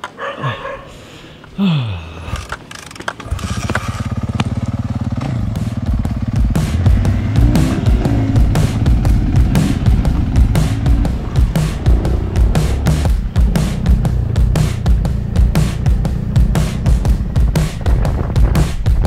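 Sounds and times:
small motorbike engine revving: 2.8 - 18.7
music with hard drum beat: 5.3 - 19.0.

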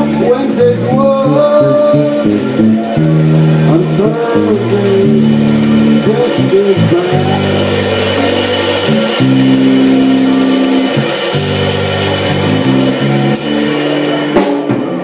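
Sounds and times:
drums with ringing cymbals: 0.0 - 15.0
electric guitar bent notes: 0.0 - 15.0
live blues band playing: 0.0 - 15.0
walking bass line: 0.0 - 15.0.

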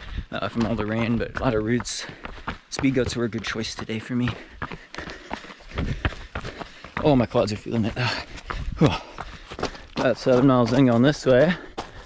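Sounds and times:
footfalls on rocky trail: 0.0 - 12.0.

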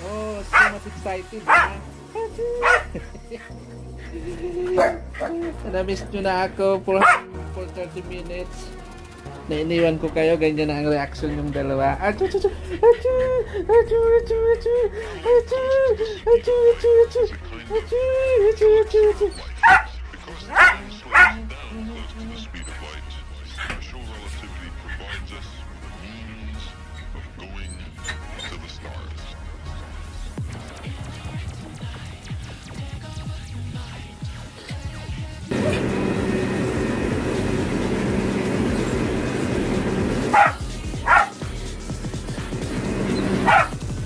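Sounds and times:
background music: 0.0 - 44.0
small dog barking: 0.5 - 0.8, 1.5 - 1.8, 2.6 - 3.0, 4.8 - 5.4, 7.0 - 7.3, 19.6 - 19.9, 20.5 - 21.4, 40.2 - 41.4, 43.2 - 43.8.

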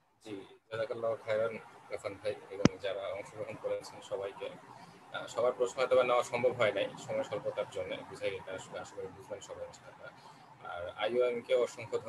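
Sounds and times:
person speaking over video call: 0.2 - 12.0.

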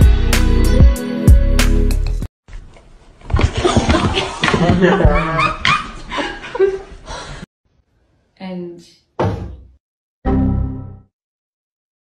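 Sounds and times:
person chuckling: 3.6 - 6.9.

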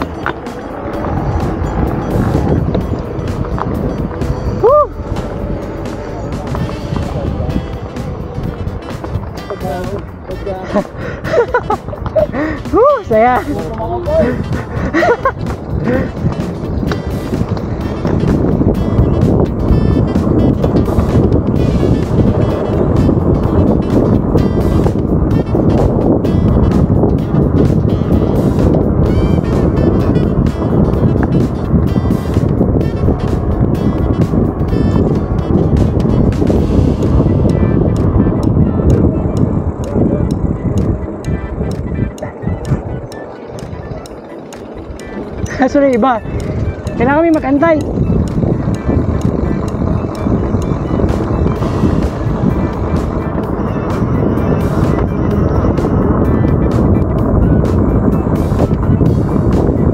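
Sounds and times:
background music: 0.0 - 59.9
wind on microphone: 0.0 - 59.9.

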